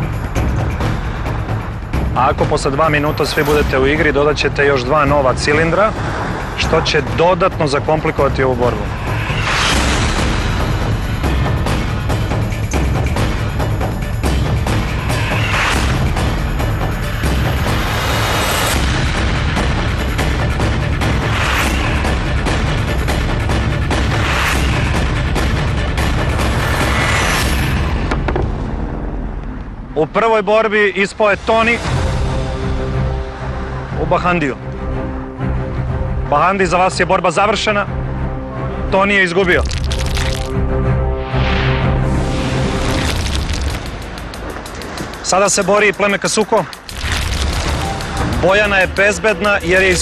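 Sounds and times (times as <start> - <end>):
tense music with booming beats: 0.0 - 50.0
rushing swell: 2.6 - 30.0.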